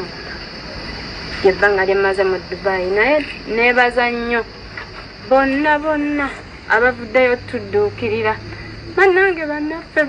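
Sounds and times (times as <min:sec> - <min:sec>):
woman speaking: 0:01.4 - 0:04.5, 0:05.2 - 0:10.0.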